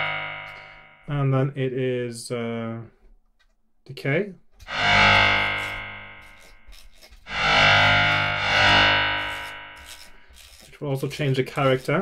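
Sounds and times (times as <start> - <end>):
low buzzy synthesized string notes: 0.0 - 1.2, 4.7 - 6.7, 7.3 - 10.1.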